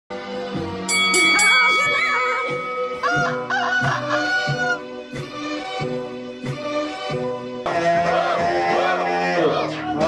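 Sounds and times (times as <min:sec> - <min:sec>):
music with repeating beat: 0:01.1 - 0:07.6
rooster crowing: 0:03.0 - 0:04.8.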